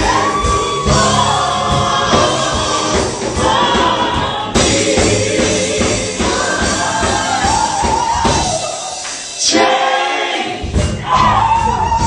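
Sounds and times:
live musical accompaniment: 0.0s - 12.0s
women singing gospel together: 0.0s - 12.0s.

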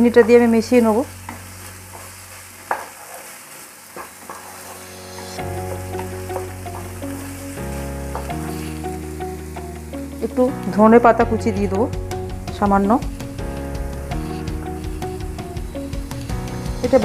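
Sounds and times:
soft background music: 0.0s - 2.4s, 4.4s - 17.0s
food frying: 0.0s - 17.0s
spatula scraping frying pan: 1.2s - 7.1s.

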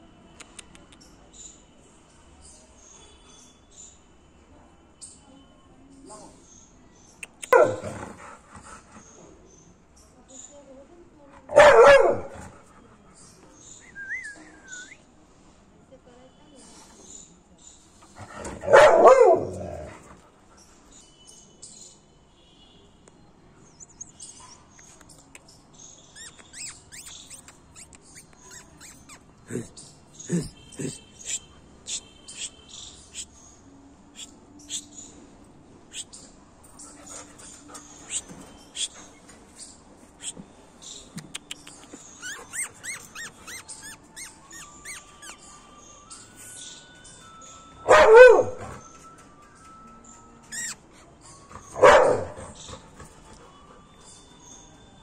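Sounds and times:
dog barking: 7.5s - 8.0s, 11.5s - 12.5s, 18.4s - 19.9s, 47.8s - 48.8s, 51.6s - 52.8s
dog panting: 7.9s - 9.2s, 36.8s - 39.2s, 52.3s - 54.4s
dog whimpering: 42.2s - 45.4s.

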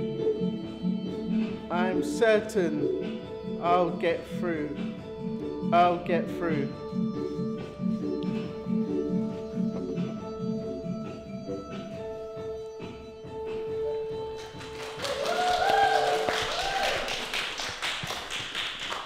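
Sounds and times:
instrumental song accompaniment: 0.0s - 19.0s
small group clapping: 14.3s - 19.0s
person whooping: 15.0s - 17.2s.

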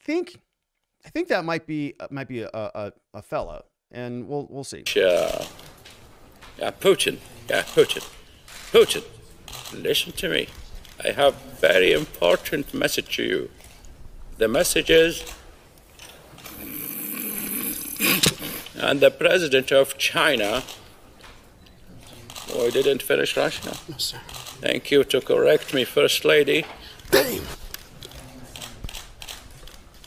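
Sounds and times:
man snoring: 16.6s - 18.3s.

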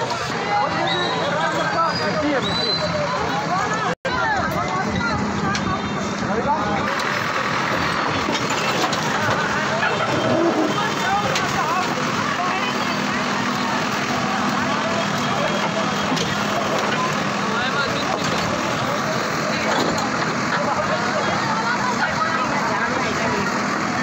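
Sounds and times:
crowd chatter: 0.0s - 24.0s
diesel engine humming: 0.0s - 24.0s
backhoe scooping rubble: 6.8s - 21.4s.

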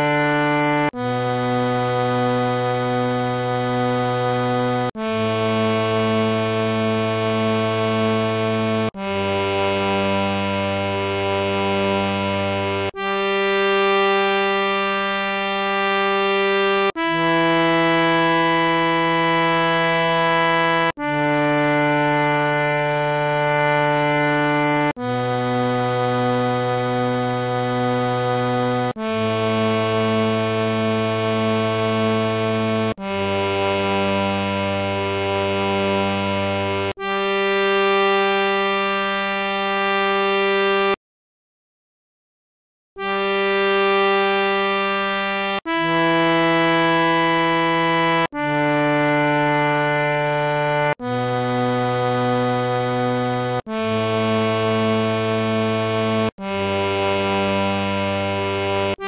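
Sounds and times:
harmonium playing held notes: 0.0s - 41.0s, 43.0s - 59.0s.

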